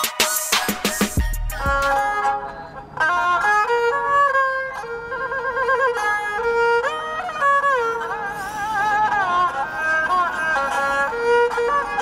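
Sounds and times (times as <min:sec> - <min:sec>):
bowed fiddle melody: 0:00.0 - 0:12.0.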